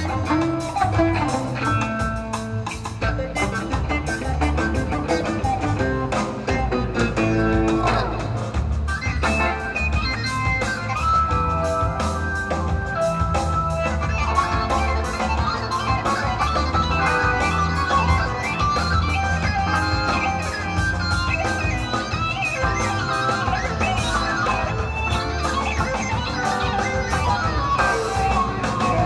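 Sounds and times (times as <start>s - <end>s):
electric guitar runs: 0.0s - 29.0s
rock band playing: 0.0s - 29.0s.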